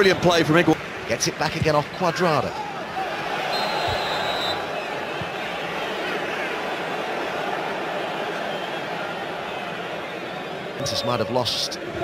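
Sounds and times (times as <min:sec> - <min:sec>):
stadium crowd murmur: 0:00.0 - 0:12.0.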